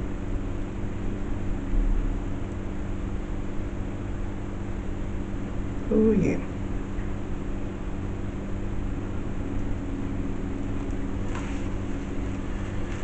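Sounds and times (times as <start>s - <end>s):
low mechanical hum: 0.0s - 13.0s
faint rustle: 10.8s - 13.0s.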